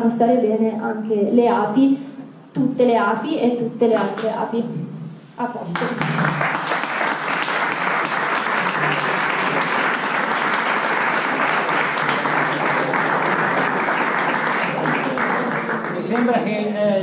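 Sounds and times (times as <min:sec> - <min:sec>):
audience applause: 0:05.8 - 0:16.5.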